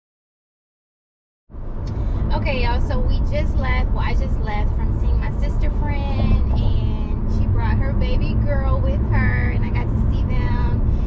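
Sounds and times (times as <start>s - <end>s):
car driving rumble: 1.5s - 11.0s
woman speaking: 2.3s - 10.9s.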